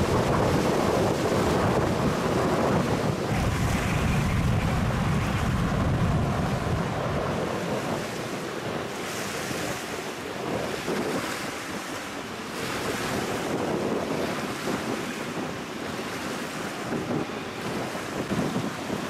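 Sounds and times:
lake waves splashing: 0.0s - 19.0s
wind buffeting microphone: 0.0s - 19.0s.

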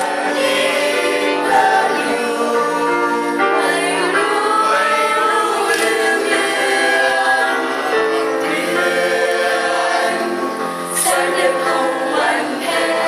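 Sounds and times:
mixed choir singing: 0.0s - 13.0s.

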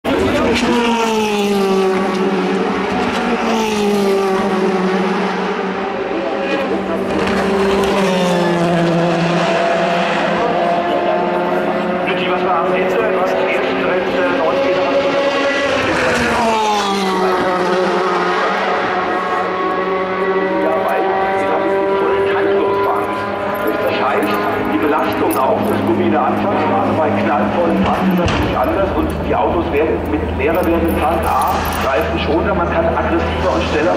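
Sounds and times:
race car engines passing: 0.0s - 33.9s.

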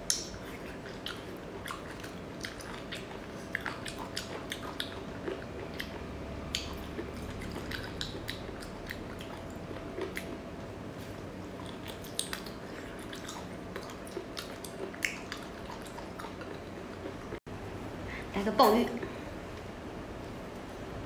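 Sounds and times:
wet mouth smacks: 0.0s - 0.6s, 6.5s - 6.8s, 11.7s - 13.4s, 14.4s - 16.6s
chewing and biting: 0.0s - 10.4s, 11.0s - 17.4s.

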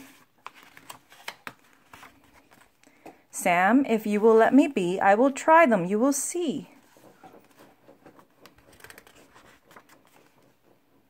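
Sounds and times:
paper pages rustling and turning: 0.0s - 3.1s, 6.7s - 10.9s.

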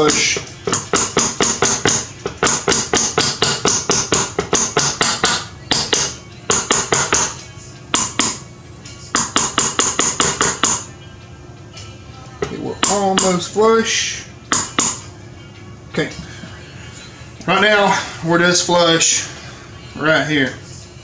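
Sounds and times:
background rock music: 0.0s - 21.0s
small hammer tapping a pin: 0.1s - 7.3s, 8.0s - 8.4s, 9.2s - 10.8s, 14.5s - 15.0s.

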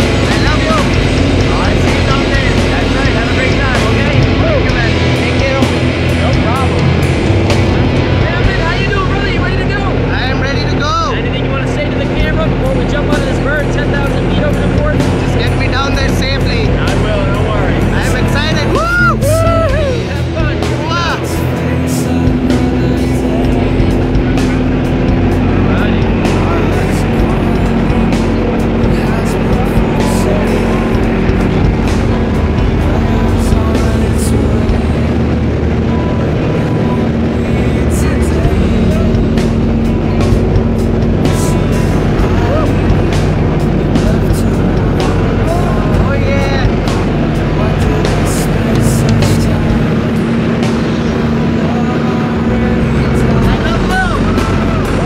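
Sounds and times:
light aircraft engine drone: 0.0s - 55.0s
music: 0.0s - 55.0s.

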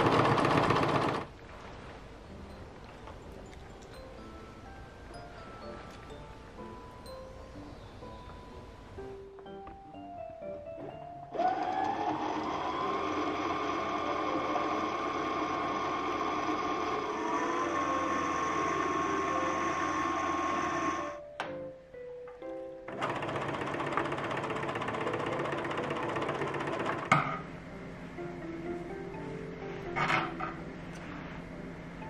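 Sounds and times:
sewing machine motor whining: 0.0s - 1.3s, 11.3s - 21.2s, 22.9s - 27.1s.

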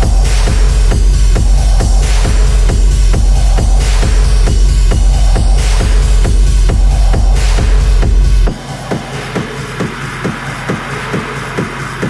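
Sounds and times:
dark techno music: 0.0s - 12.0s.

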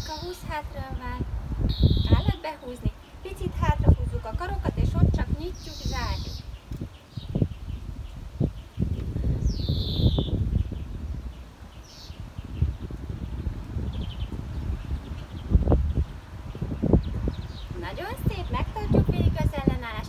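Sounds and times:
birds chirping: 0.0s - 20.0s
wind buffeting microphone: 0.0s - 20.0s.

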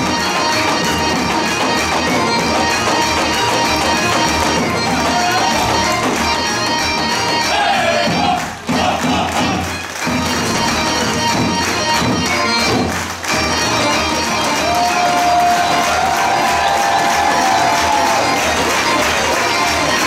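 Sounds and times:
folk orchestra playing dance tune: 0.0s - 20.0s
crowd shouting and cheering: 3.6s - 10.0s, 13.4s - 20.0s.

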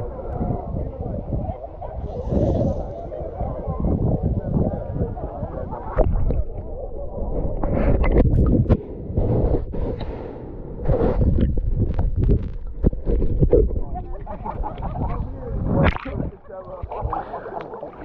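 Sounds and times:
water sloshing against camera: 0.8s - 10.2s, 10.8s - 18.0s.

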